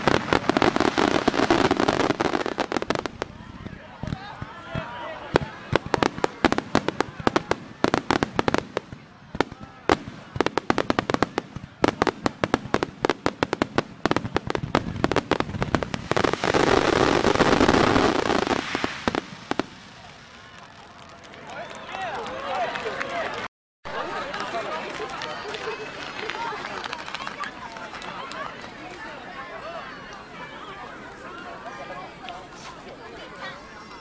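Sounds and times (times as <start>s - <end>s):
fireworks bursting: 0.0s - 21.2s
spectators' voices: 0.0s - 34.0s.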